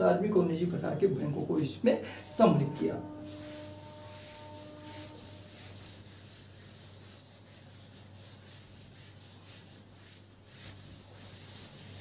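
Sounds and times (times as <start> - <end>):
eraser wiping a whiteboard: 2.6 - 12.0.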